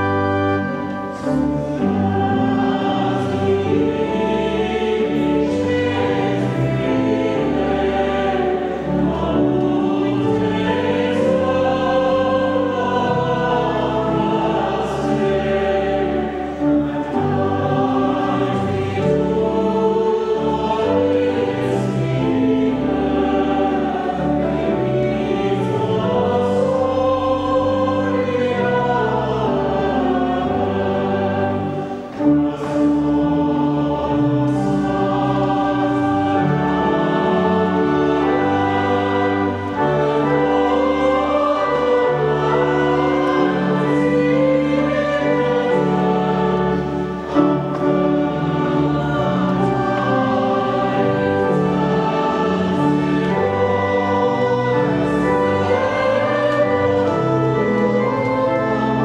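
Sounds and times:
church choir singing: 0.0s - 59.0s
pipe organ: 0.0s - 59.0s.

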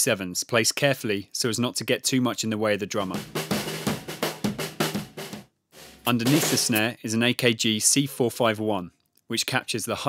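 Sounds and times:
snare and kick drum strokes: 3.1s - 6.9s.

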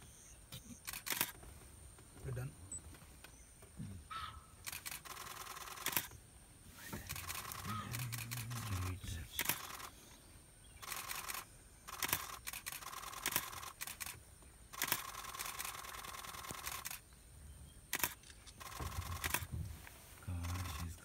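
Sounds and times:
camera shutters clicking: 0.8s - 1.4s, 4.6s - 6.2s, 7.0s - 9.9s, 10.8s - 17.0s, 17.9s - 19.5s.

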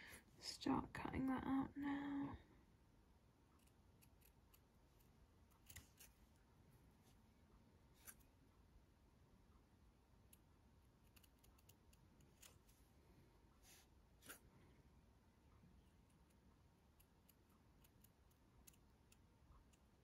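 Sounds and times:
scissors snipping felt: 3.6s - 6.2s, 11.0s - 12.6s.

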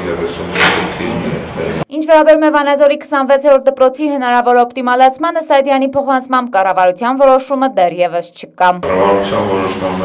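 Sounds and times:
man speaking: 0.0s - 1.9s, 8.8s - 10.0s.

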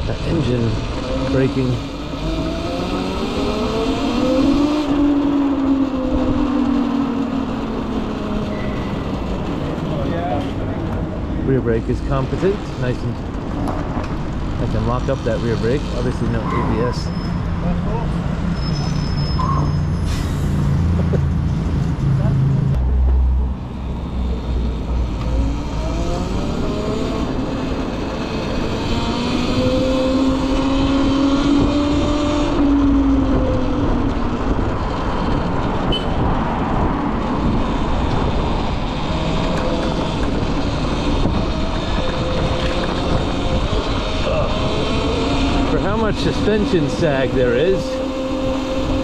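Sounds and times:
road and wind noise: 0.0s - 49.0s.

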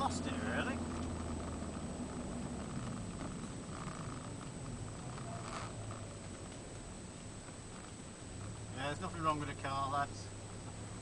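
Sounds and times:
car engine humming inside cabin: 0.0s - 11.0s.

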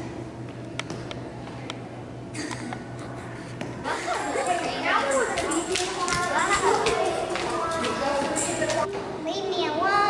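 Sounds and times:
children chattering and calling out: 3.9s - 10.0s.

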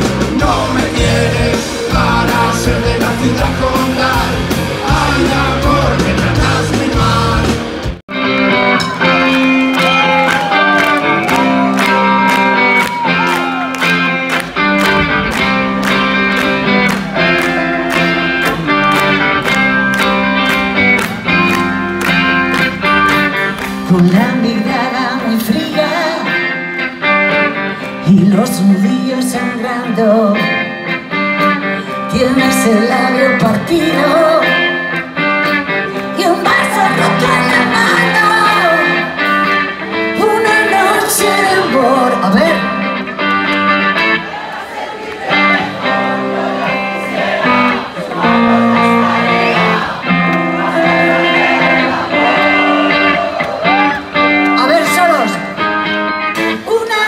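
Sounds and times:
electric guitar chords: 0.0s - 57.0s
live rock band playing: 0.0s - 57.0s.

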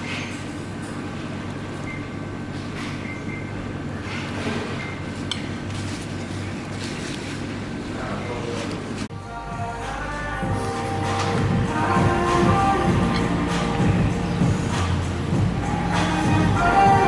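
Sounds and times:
low background hum: 0.0s - 17.0s.

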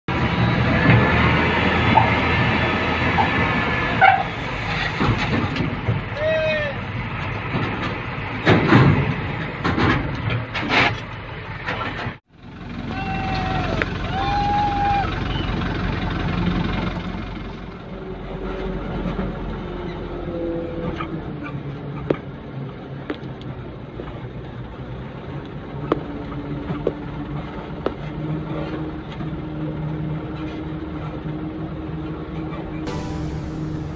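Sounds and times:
diesel truck engine running: 6.8s - 19.7s
metal clanks and rattles: 7.2s - 12.2s.

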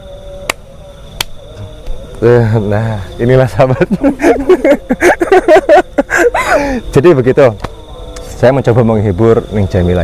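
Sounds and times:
hands slapping: 0.4s - 0.6s, 1.2s - 2.0s.

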